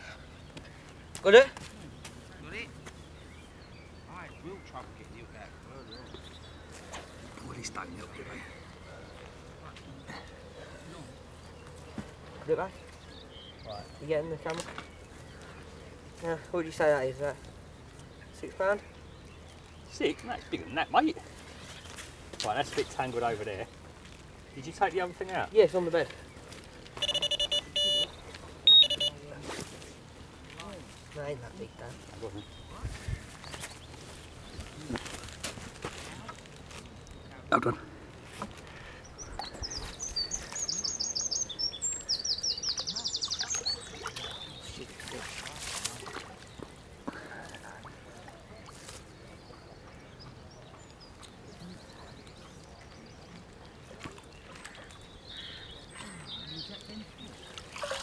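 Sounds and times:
small birds chirping: 0.0s - 29.4s, 30.0s - 58.0s
electronic bite alarm beeping: 27.0s - 29.2s
water lapping: 42.0s - 58.0s
water splashing around a net: 43.5s - 46.6s, 57.5s - 58.0s.

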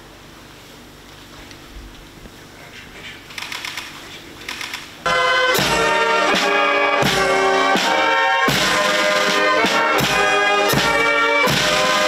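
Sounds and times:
quick clicks: 3.3s - 4.9s
brass band music: 5.1s - 12.0s.

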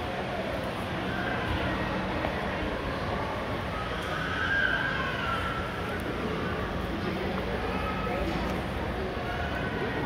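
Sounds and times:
mall background noise: 0.0s - 10.0s.

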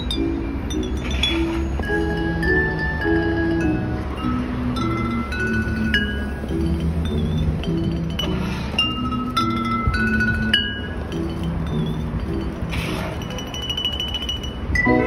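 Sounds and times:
city traffic rumble: 0.0s - 15.0s
glass bottles chiming melody: 0.0s - 15.0s.

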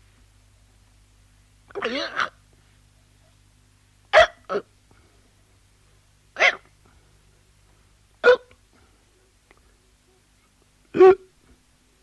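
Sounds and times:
person hiccuping: 1.7s - 2.4s, 4.1s - 4.7s, 6.4s - 6.7s, 8.2s - 8.5s, 10.9s - 11.4s.

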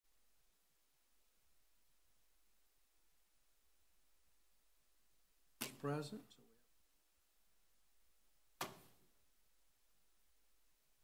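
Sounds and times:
person speaking: 5.6s - 6.7s.

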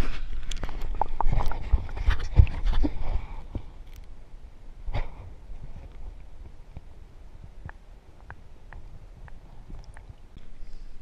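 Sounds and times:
water sloshing and splashing: 0.0s - 3.6s.

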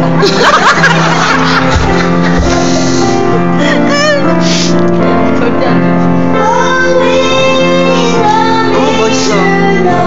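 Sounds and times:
instrumental accompaniment: 0.0s - 10.0s
children singing a carol: 6.4s - 10.0s.

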